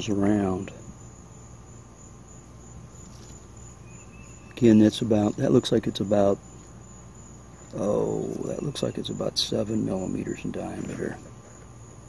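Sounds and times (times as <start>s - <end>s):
faint low hum: 0.0s - 12.0s
insects chirping: 0.0s - 12.0s.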